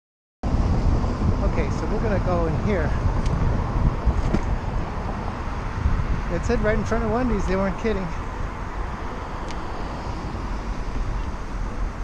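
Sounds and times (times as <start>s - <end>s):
road traffic going by: 0.4s - 12.0s
wind buffeting microphone: 0.4s - 12.0s.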